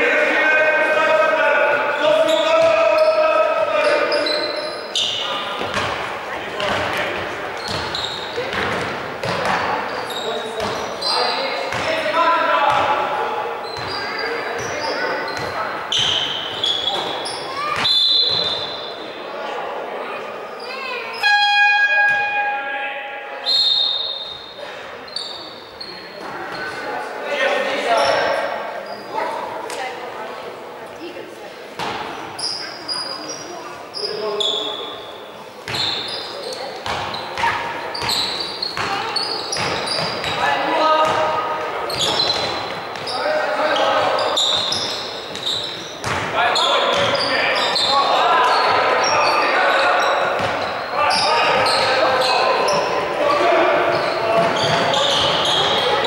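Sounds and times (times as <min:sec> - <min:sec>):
shoe squeaks: 0:02.2 - 0:05.8, 0:07.6 - 0:08.8, 0:09.7 - 0:11.8, 0:13.6 - 0:19.0, 0:20.6 - 0:22.5, 0:23.4 - 0:26.8, 0:27.9 - 0:29.3, 0:32.2 - 0:41.2, 0:41.8 - 0:56.0
basketball bouncing on wooden floor: 0:05.6 - 0:06.0, 0:06.6 - 0:09.6, 0:36.8 - 0:38.2, 0:45.3 - 0:46.3, 0:46.9 - 0:47.2
horn-like tone: 0:21.2 - 0:22.7
voices calling out: 0:32.1 - 0:56.0.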